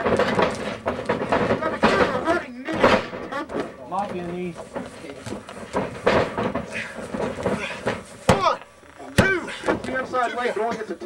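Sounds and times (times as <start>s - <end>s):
voices: 1.2s - 11.0s.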